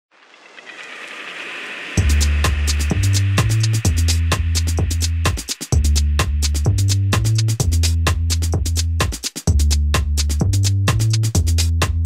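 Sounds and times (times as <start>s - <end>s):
noise hiss: 0.1s - 6.6s
intro music: 1.3s - 12.0s.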